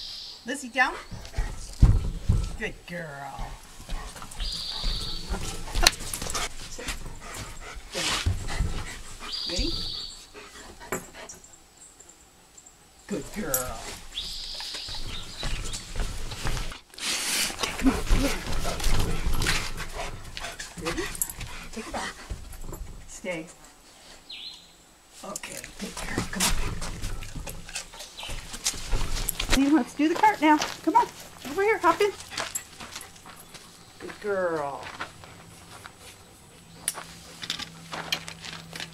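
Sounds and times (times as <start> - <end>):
dog settling down: 1.0 - 11.5, 13.2 - 23.8, 25.5 - 38.9
handling clicks and rustles: 25.3 - 38.9.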